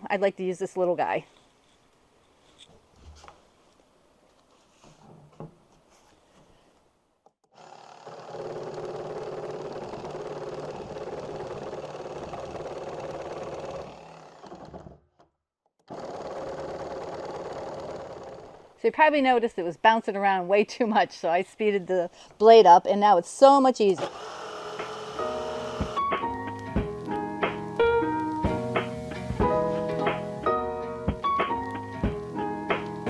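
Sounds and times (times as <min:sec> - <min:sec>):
jigsaw cutting plastic: 0:07.5 - 0:15.0, 0:15.8 - 0:18.7, 0:24.0 - 0:26.1.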